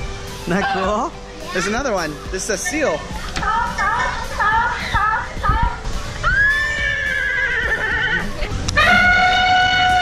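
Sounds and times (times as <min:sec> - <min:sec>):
recorded zebra whinny: 0:06.3 - 0:10.0.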